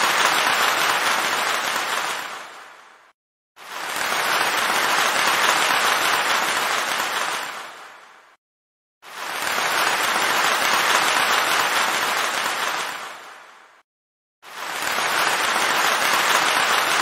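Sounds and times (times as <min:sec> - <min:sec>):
applause: 0:00.0 - 0:08.4, 0:09.0 - 0:13.8, 0:14.5 - 0:17.0.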